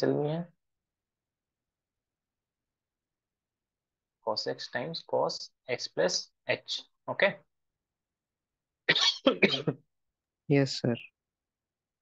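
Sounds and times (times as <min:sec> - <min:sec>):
person coughing: 0:08.9 - 0:09.8.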